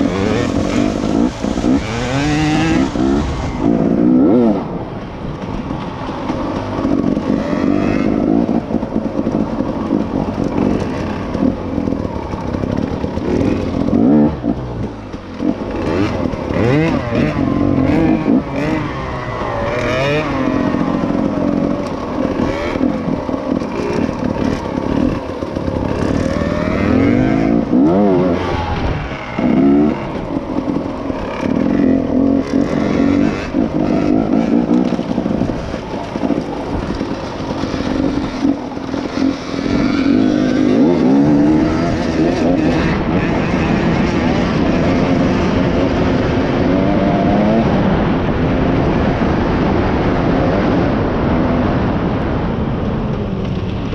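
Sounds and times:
motorcycle engine revving: 0.0 - 53.9.

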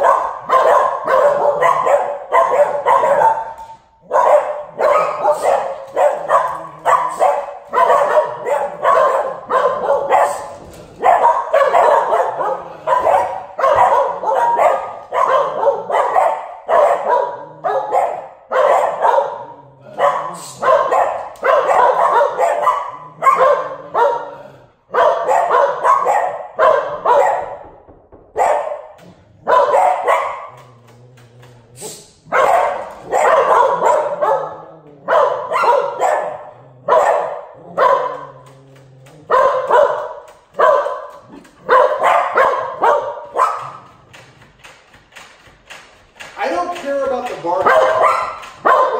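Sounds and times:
dogs barking: 0.0 - 48.9.

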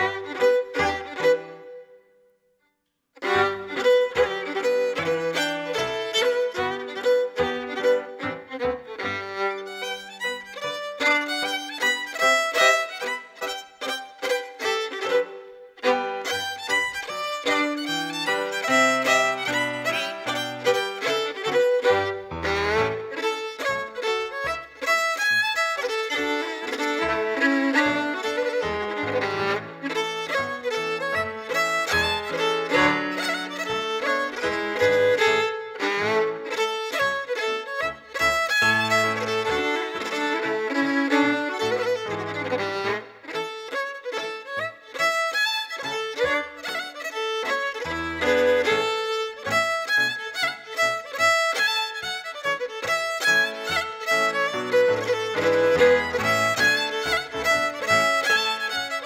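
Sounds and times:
fiddle playing quick runs: 0.0 - 2.0, 3.2 - 59.0.

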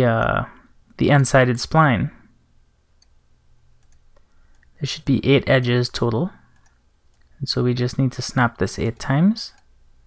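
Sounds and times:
man talking: 0.0 - 2.3, 4.8 - 6.4, 7.4 - 9.6
low steady hum: 0.0 - 10.0
computer mouse clicks: 3.8 - 4.7, 6.5 - 7.3.

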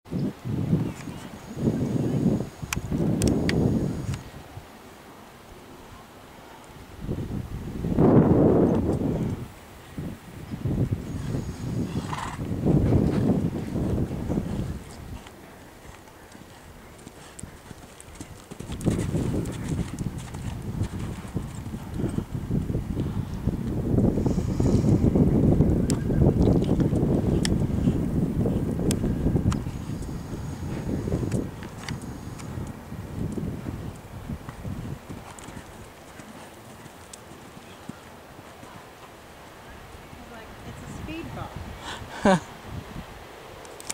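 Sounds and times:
horse hoofbeats on sand: 11.0 - 23.2, 26.4 - 39.2.

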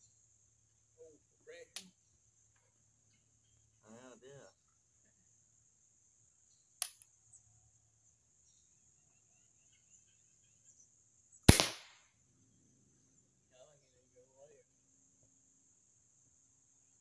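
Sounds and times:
crossbow string snap: 6.8 - 7.1, 11.5 - 12.0.

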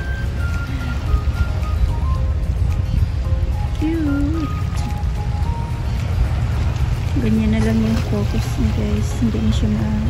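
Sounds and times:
soft melody of held notes: 0.0 - 10.0
steady low rumble: 0.0 - 10.0.

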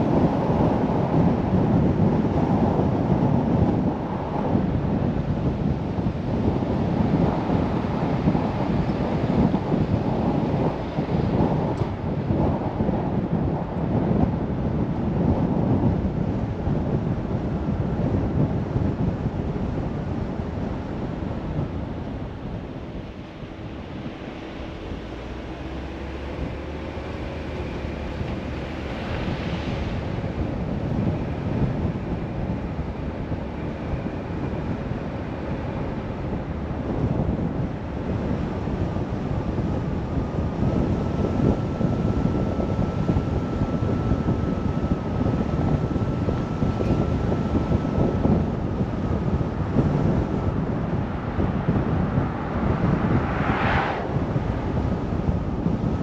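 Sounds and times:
tyre and engine noise: 0.0 - 56.0
wind on microphone: 0.0 - 56.0.

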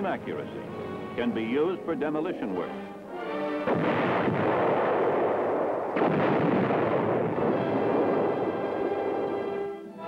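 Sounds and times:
explosions: 3.6 - 9.7
gunfire: 3.6 - 9.8
sharp blast: 3.6 - 9.8.

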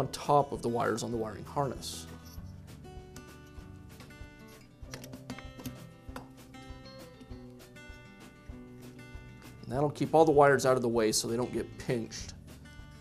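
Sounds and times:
plucked acoustic guitar music: 0.0 - 13.0.

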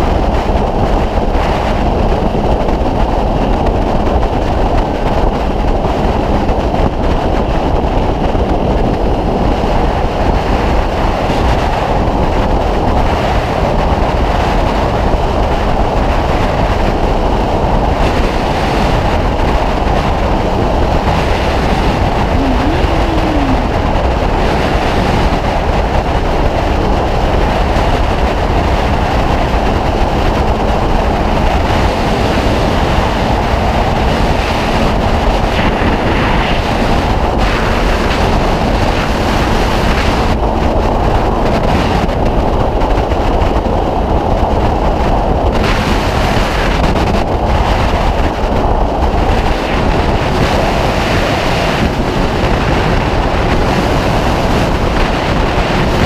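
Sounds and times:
wind and road noise: 0.0 - 56.0
motorcycle engine cruising: 15.6 - 45.4.

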